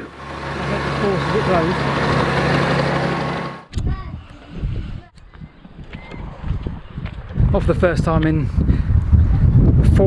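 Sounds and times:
wind buffeting microphone: 3.7 - 10.0.

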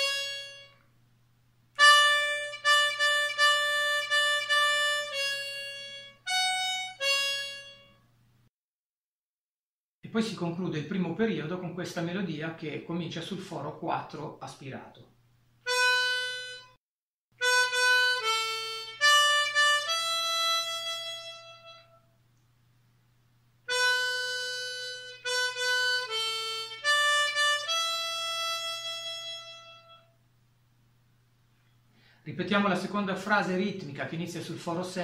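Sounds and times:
harmonica playing single notes: 0.0 - 0.9, 1.8 - 8.1, 15.6 - 16.8, 17.4 - 22.2, 23.7 - 30.2.

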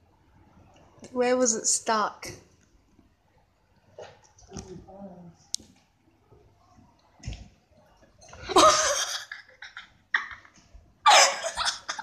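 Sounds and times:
parrot harsh coughing sounds: 11.1 - 12.0.

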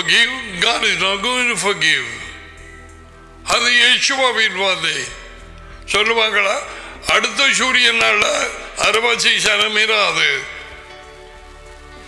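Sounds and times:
man speaking: 0.0 - 2.5, 3.4 - 10.7
faint background music: 0.0 - 12.0.

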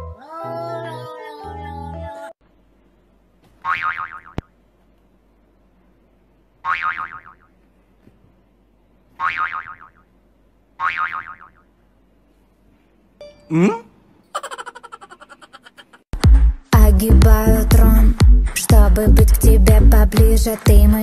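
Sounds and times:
cartoon boing: 3.6 - 4.5, 6.6 - 7.5, 9.2 - 10.1, 10.8 - 11.7.

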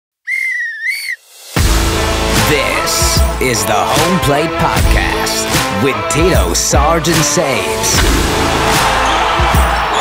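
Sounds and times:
whistle blast rising in pitch: 0.2 - 1.2
intro music with strong bass: 1.3 - 9.9.

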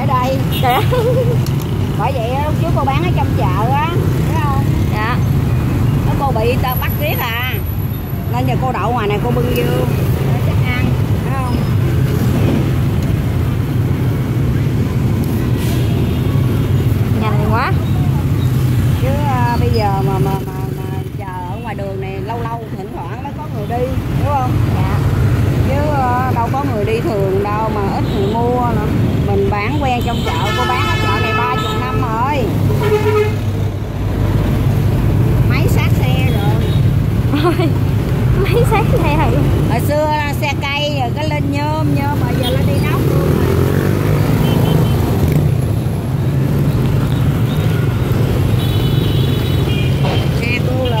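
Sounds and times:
street traffic rumble: 0.0 - 51.0
vehicle passing: 30.6 - 51.0.

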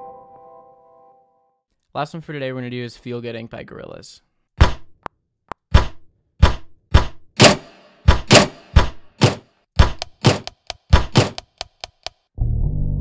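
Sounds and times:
sampled drum beat thunks and clicks: 5.5 - 12.2.

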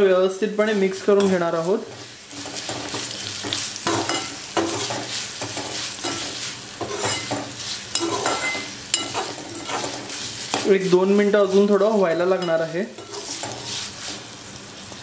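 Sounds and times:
spices sizzling in hot oil: 0.0 - 15.0
metal spatula scraping pan: 0.8 - 14.3.

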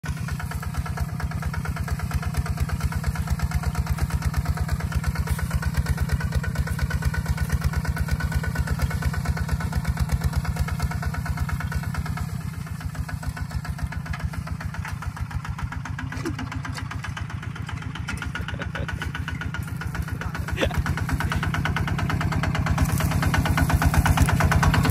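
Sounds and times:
diesel tractor engine chugging: 0.0 - 24.9.

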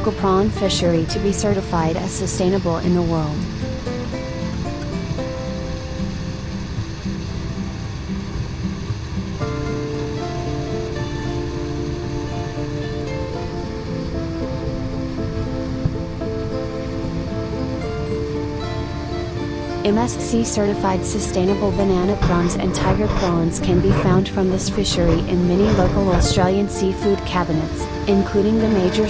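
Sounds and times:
sea noise: 0.0 - 29.0
sustained background music: 0.0 - 29.0.

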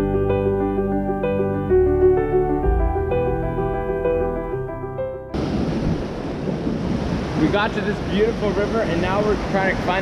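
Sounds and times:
piano music: 0.0 - 6.1
river rushing: 5.3 - 10.0
wind buffeting microphone: 5.3 - 10.0.

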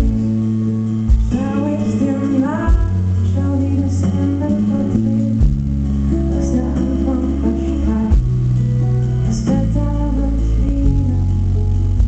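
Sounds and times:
acoustic guitar: 0.0 - 12.0
live band music: 0.0 - 12.0
sustained bass notes: 0.0 - 12.0.

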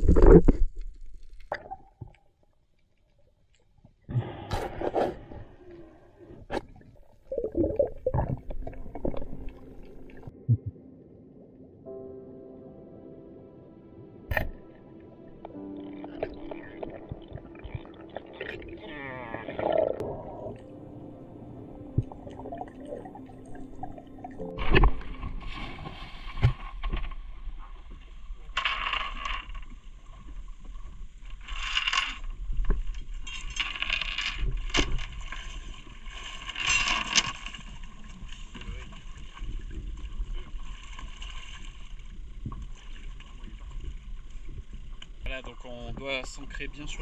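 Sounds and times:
muffled underwater sound: 15.3 - 26.5.

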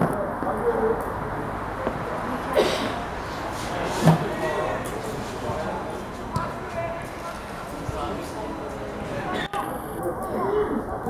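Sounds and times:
players calling and shouting: 0.0 - 11.0.

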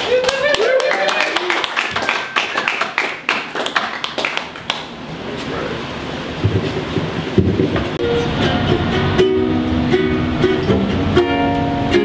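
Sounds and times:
double bass playing: 6.8 - 12.0
ukulele playing: 8.0 - 12.0.

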